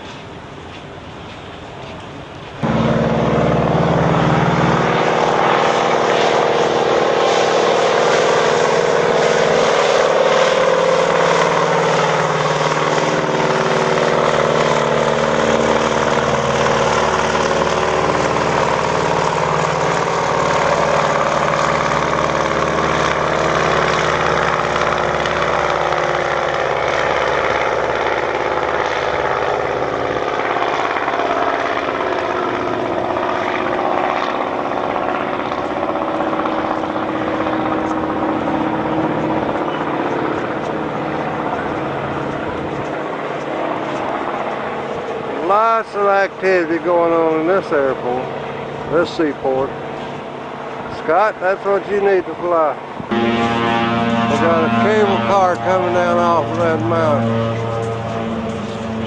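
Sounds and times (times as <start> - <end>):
propeller plane engine at takeoff: 0.0 - 59.0.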